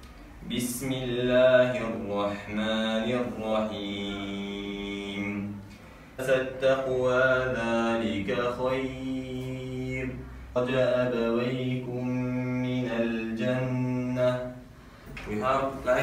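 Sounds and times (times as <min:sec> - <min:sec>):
man chanting recitation: 0:00.4 - 0:16.0.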